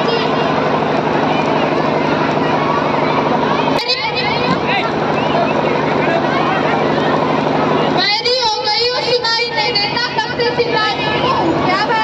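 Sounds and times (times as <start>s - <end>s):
steady noisy drone: 0.0s - 12.0s.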